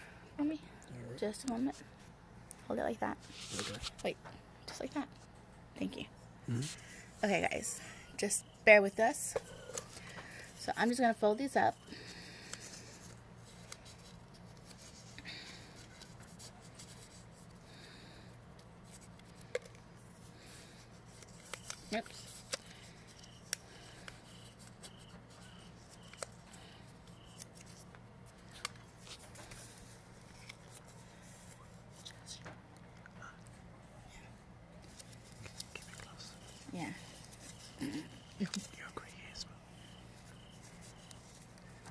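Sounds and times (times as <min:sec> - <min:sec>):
faint low hum: 0:00.0 - 0:41.9
paper being folded and creased: 0:03.3 - 0:04.0, 0:20.7 - 0:26.4, 0:34.8 - 0:37.8
crisp paper clicks: 0:21.1 - 0:24.3, 0:24.9 - 0:26.4.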